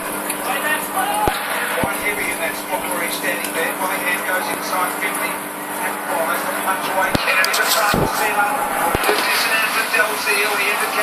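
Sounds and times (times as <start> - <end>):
air stone bubbling: 5.6 - 9.5.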